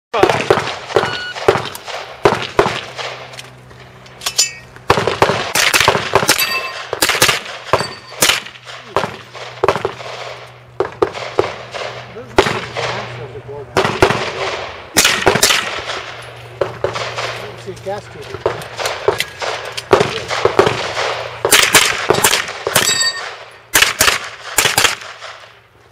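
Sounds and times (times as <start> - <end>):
rapid gunshots: 0.1 - 3.3, 4.9 - 17.6, 18.4 - 25.6
steel targets ringing: 0.9 - 1.5, 4.2 - 4.8, 6.3 - 7.0, 7.6 - 9.2, 22.7 - 23.7.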